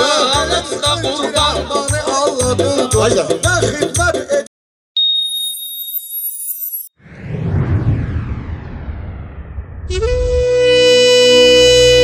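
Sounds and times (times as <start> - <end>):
high-pitched electronic tone: 5.0 - 10.4.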